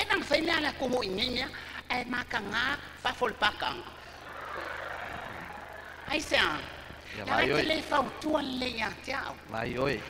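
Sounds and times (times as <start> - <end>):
live audience crowd noise: 3.9 - 7.2.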